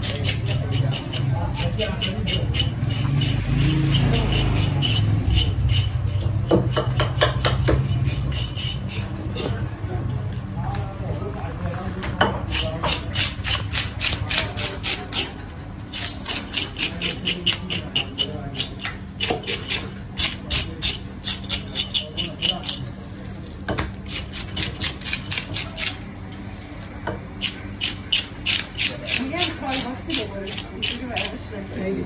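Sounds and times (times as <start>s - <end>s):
blade scraping fish scales: 0.0s - 7.0s, 7.8s - 9.6s, 12.5s - 22.9s, 27.4s - 31.4s.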